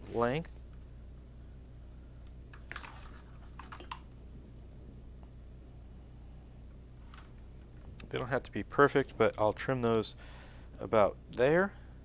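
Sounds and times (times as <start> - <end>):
steady low hum: 0.0 - 12.0
wires clicking and rustling: 2.2 - 4.2.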